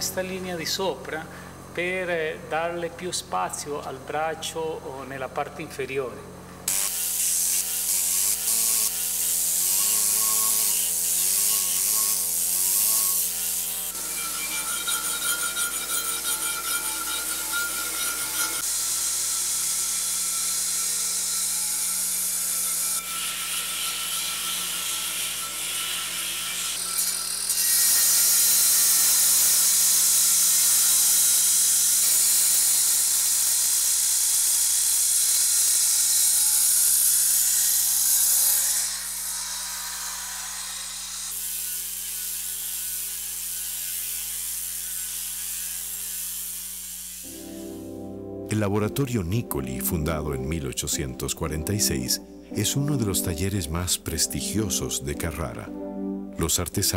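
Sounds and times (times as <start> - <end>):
angle grinder grinding marble: 6.6 - 47.9.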